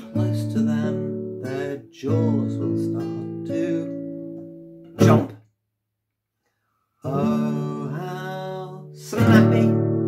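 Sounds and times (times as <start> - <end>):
classical guitar chords strummed: 0.0 - 5.4, 7.1 - 10.0.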